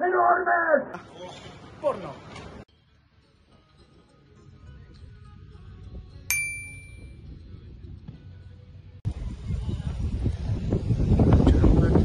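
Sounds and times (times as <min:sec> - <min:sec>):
bright notification bell ding: 0:06.3 - 0:07.1.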